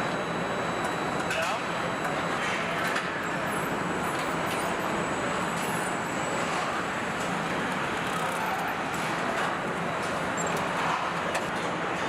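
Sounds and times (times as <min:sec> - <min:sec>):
machinery and workshop noise: 0:00.0 - 0:12.0.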